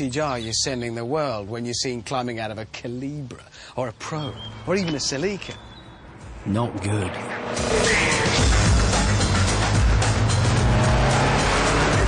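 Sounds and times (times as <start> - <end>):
background music: 3.6 - 12.0
car engine running: 7.3 - 12.0.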